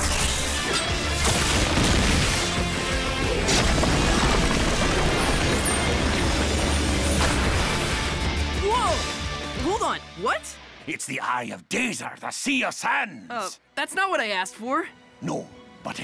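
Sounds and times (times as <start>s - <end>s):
dramatic soundtrack music: 0.0s - 16.0s.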